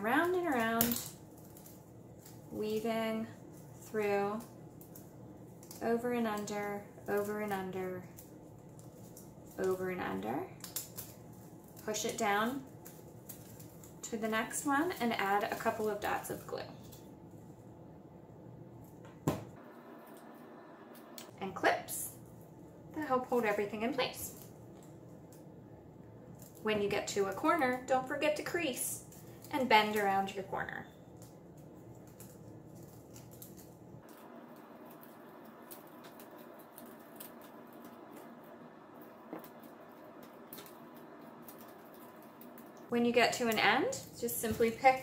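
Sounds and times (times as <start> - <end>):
handling of paper strips: 0.0 - 17.6, 22.1 - 45.0
paper rustling: 31.1 - 42.9.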